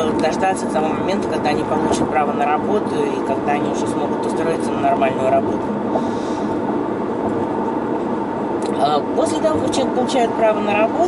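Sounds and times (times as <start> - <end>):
car interior road noise: 0.0 - 11.0.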